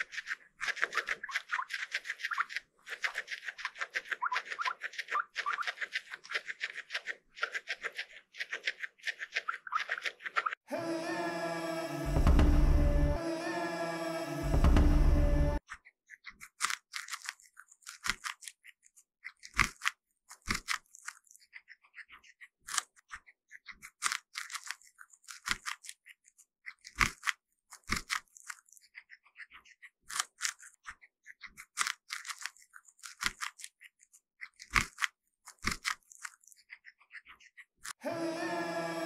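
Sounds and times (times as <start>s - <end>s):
guinea pig chewing corn: 0.0s - 10.6s, 15.6s - 39.0s.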